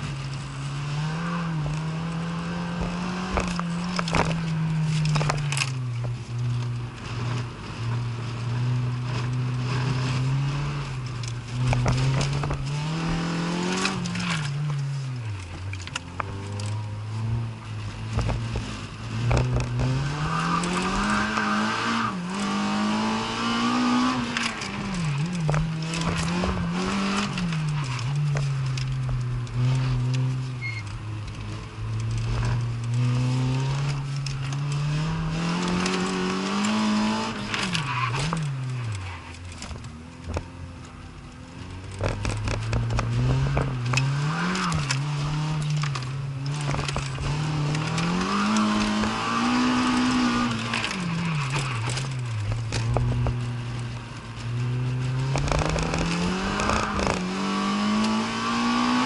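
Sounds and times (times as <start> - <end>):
car engine revving: 0.0 - 59.0.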